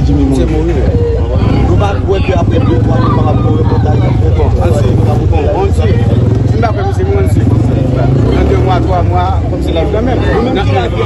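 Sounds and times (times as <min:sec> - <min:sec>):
crowd chatter: 0:00.0 - 0:11.0
men talking: 0:00.0 - 0:11.0.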